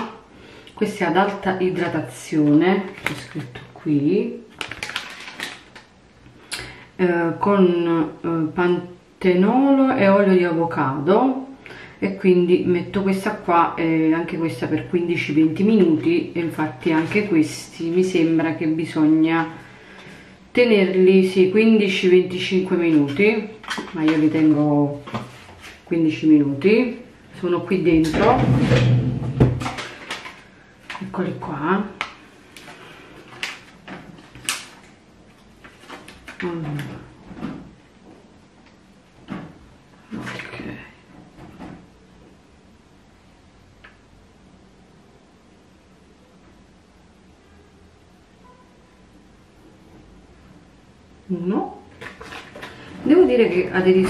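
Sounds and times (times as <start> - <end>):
plastic sachet rustling: 4.5 - 5.9.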